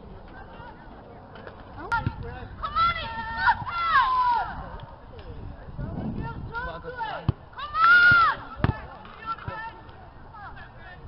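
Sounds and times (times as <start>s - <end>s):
players shouting: 6.7s - 11.0s.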